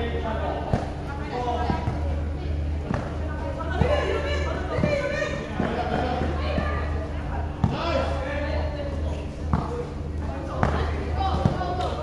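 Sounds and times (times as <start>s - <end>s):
basketball bouncing on court: 10.6s - 11.9s.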